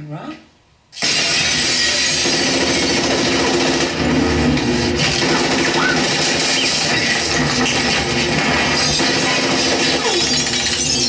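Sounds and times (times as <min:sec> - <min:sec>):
dense mechanical noise soundtrack: 0:00.7 - 0:11.0.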